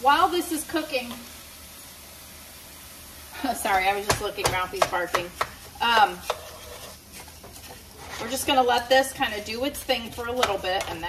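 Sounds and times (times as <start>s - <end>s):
faint sizzle: 0.0s - 11.0s
spatula stirring in frying pan: 3.6s - 11.0s.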